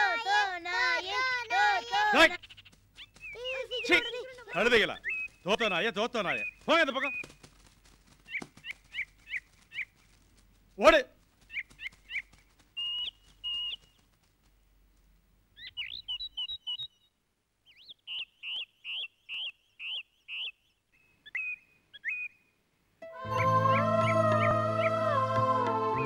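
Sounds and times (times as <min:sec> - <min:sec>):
child calling out: 0:00.0 - 0:02.2, 0:03.4 - 0:04.6
birds chirping: 0:00.0 - 0:14.2, 0:15.4 - 0:26.0.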